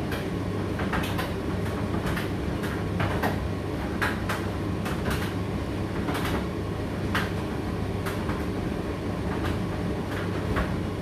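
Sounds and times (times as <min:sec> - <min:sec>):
tumble dryer running: 0:00.0 - 0:11.0.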